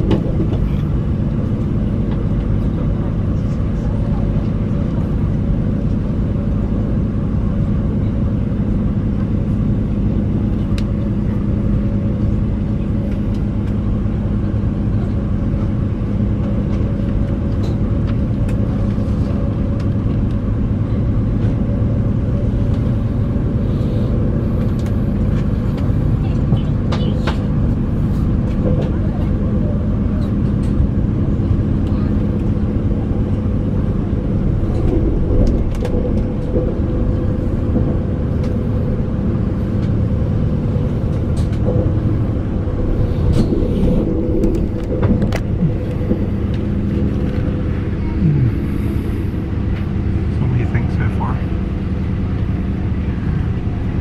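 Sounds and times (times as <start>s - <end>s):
constant low hum: 0.0s - 54.0s
train wheels rumbling on rail: 0.0s - 54.0s.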